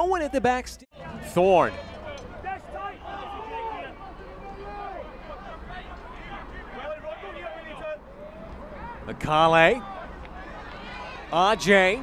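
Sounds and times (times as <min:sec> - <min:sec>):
low hum of stadium noise: 0:00.0 - 0:12.0
distant voices shouting: 0:01.0 - 0:12.0.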